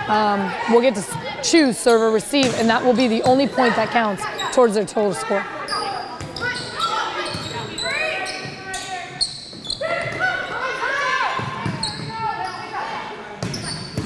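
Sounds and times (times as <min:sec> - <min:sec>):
players calling out: 0:00.0 - 0:14.0
sneakers squeaking: 0:01.0 - 0:14.0.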